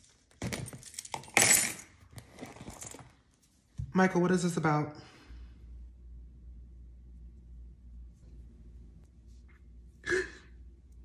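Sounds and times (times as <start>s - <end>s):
handbag rustling: 2.1s - 3.2s.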